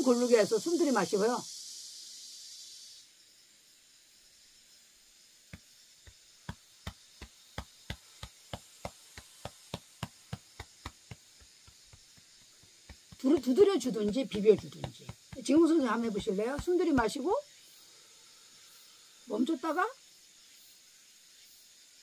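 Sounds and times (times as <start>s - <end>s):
hand patting chest: 5.5s - 17.4s.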